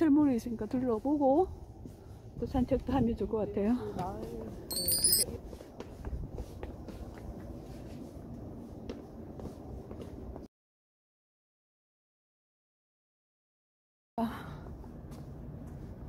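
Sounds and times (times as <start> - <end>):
high metallic ding: 4.7 - 5.2.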